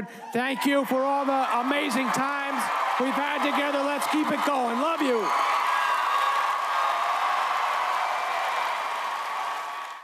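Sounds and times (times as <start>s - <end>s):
audience applauding and cheering: 0.5s - 10.0s.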